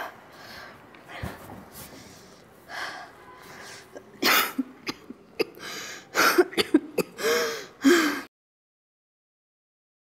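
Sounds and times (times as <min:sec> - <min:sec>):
person coughing: 0:04.0 - 0:08.1.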